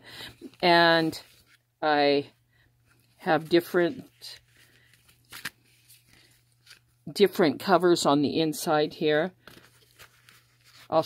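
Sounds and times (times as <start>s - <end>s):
paper pages rustling: 1.2s - 1.6s, 2.8s - 7.0s, 9.4s - 11.0s
crisp paper snap: 4.7s - 6.8s.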